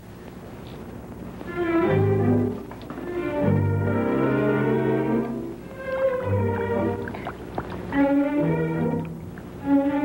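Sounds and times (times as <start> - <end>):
orchestral strings music: 1.4 - 10.0.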